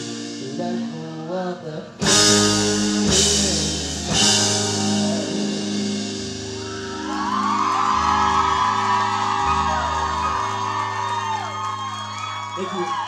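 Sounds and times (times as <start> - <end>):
rock band notes ringing out: 2.0 - 10.9
audience whooping and cheering: 6.4 - 13.0.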